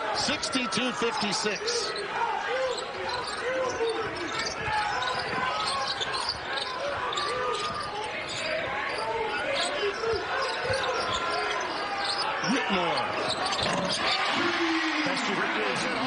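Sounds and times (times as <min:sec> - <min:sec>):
arena crowd noise: 0:00.0 - 0:16.0
sneaker squeaks: 0:01.6 - 0:14.4.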